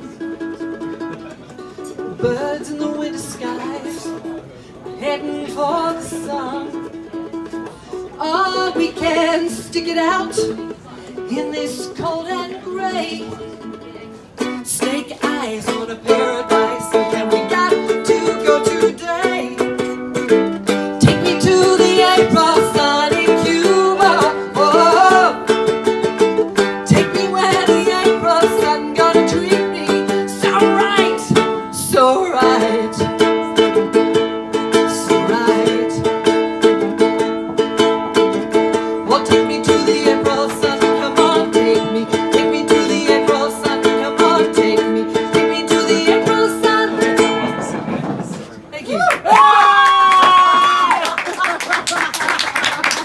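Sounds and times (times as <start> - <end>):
ukulele strumming: 0.0 - 48.7
person singing: 14.4 - 37.2, 38.5 - 47.6.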